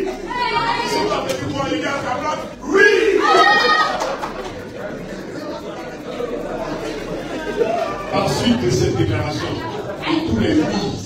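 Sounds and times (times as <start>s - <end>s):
crowd murmuring: 0.0s - 11.0s.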